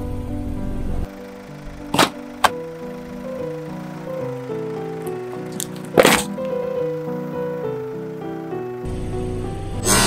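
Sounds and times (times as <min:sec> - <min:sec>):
cans crushed under tyre: 0:01.9 - 0:02.6, 0:05.0 - 0:06.6.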